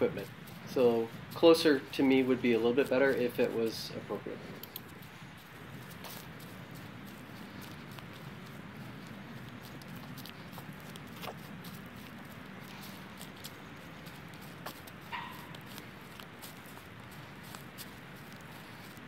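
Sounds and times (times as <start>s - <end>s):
footsteps through grass and leaves: 0.0s - 19.0s
low background rumble: 0.0s - 19.0s.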